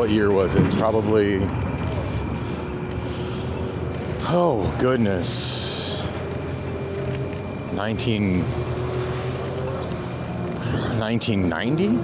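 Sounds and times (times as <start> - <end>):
light rail train rumble: 0.0 - 12.0
street traffic: 0.0 - 12.0.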